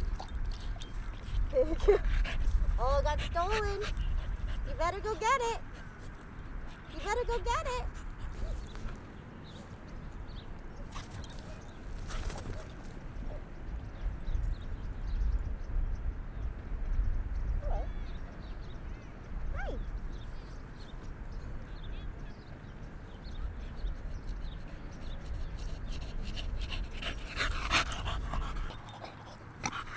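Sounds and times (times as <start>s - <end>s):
wind rumble on microphone: 0.0s - 10.6s, 11.8s - 28.8s.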